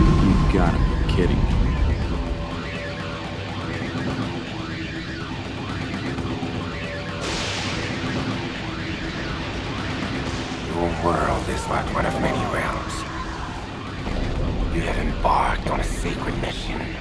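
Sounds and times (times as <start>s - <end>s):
low synth tones: 0.0s - 17.0s.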